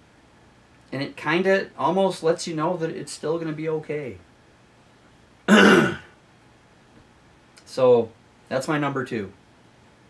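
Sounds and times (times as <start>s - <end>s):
man clearing his throat: 5.5s - 6.2s.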